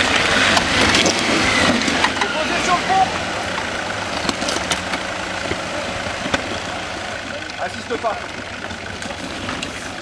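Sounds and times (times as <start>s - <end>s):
stones crunching under tyres: 0.0s - 2.8s, 3.5s - 10.0s
vehicle engine running: 0.0s - 10.0s.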